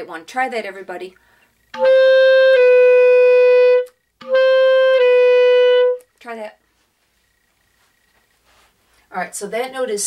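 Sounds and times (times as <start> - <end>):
clarinet playing two notes: 1.8 - 6.1.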